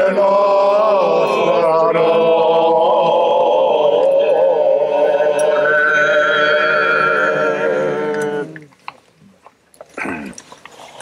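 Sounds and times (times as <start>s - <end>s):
men singing a chant: 0.0s - 8.6s.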